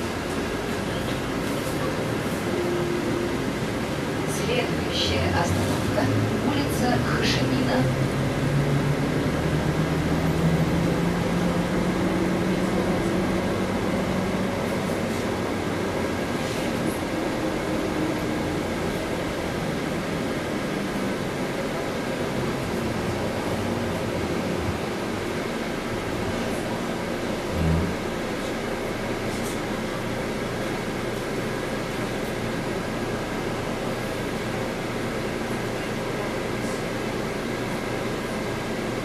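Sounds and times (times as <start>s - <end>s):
bus engine drone: 0.0s - 39.0s
road noise: 0.0s - 39.0s.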